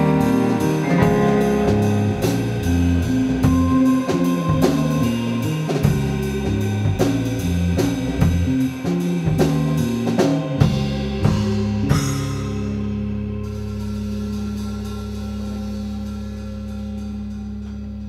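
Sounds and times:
held final chord ringing: 0.0s - 6.4s
drum and cymbal hits: 0.0s - 13.0s
rock band playing: 0.0s - 17.8s.

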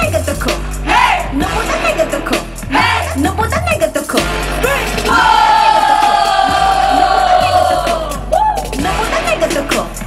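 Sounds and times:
backing track music: 0.0s - 10.0s.

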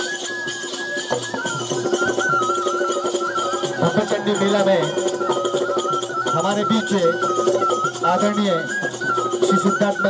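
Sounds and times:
high melody line: 0.0s - 10.0s
quick percussion strokes: 0.0s - 10.0s.

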